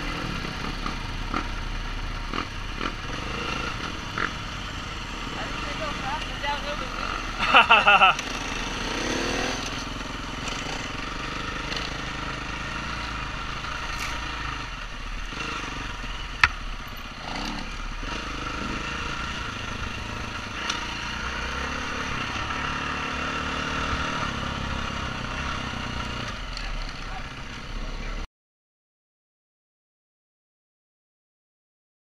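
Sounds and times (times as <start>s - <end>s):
dirt bike engine running: 0.0s - 28.2s.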